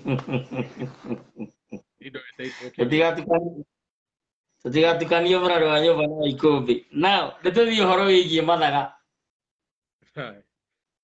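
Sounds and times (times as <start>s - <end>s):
man laughing: 0.0s - 2.0s
man talking: 2.0s - 3.7s.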